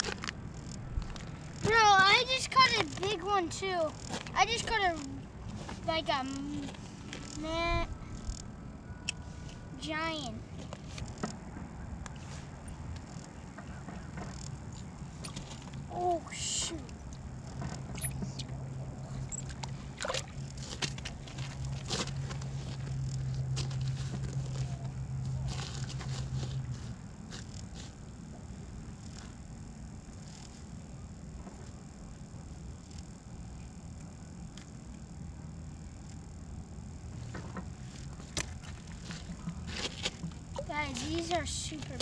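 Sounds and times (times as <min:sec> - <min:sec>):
low motor hum: 0:00.0 - 0:42.0.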